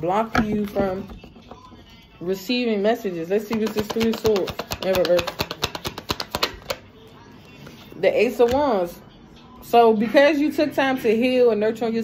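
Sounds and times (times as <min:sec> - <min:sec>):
cards being shuffled: 0:03.5 - 0:06.8.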